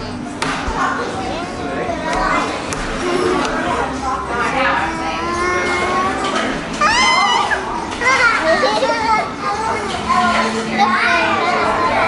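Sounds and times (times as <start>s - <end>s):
young children talking: 0.0s - 12.0s
children's playful vocal sounds: 0.8s - 12.0s.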